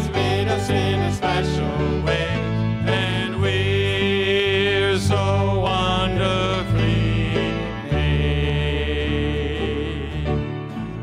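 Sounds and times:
acoustic guitar: 0:00.0 - 0:11.0
piano: 0:00.0 - 0:11.0
voices holding a chord: 0:00.0 - 0:11.0.

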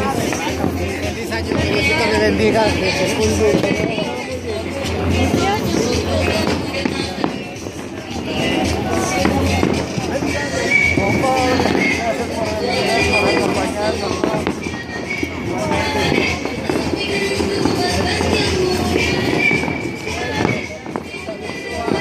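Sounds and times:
firework sparks crackling: 0:00.0 - 0:22.0
music: 0:00.0 - 0:22.0
voices: 0:00.0 - 0:22.0.

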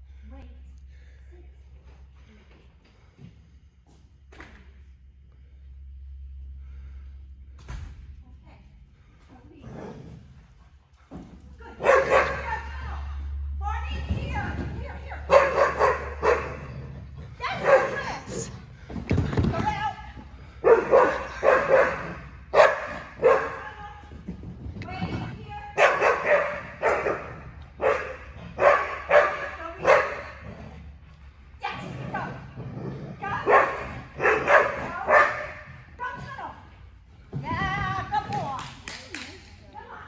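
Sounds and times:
dog barking: 0:11.8 - 0:12.6, 0:15.3 - 0:16.7, 0:17.5 - 0:18.2, 0:20.6 - 0:23.6, 0:25.8 - 0:30.4, 0:33.4 - 0:35.6.

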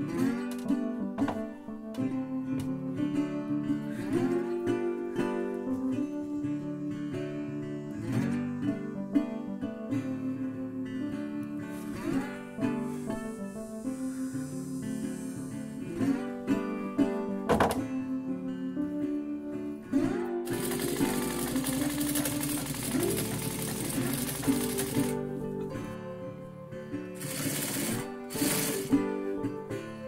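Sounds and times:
acoustic guitar music: 0:00.0 - 0:30.0
sewing machine stitching: 0:20.4 - 0:25.3, 0:27.2 - 0:29.1.

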